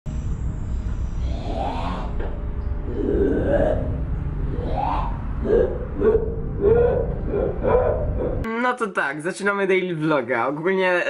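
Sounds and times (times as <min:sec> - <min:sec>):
deep rumble: 0:00.1 - 0:08.5
wavering voice-like wails: 0:01.2 - 0:08.5.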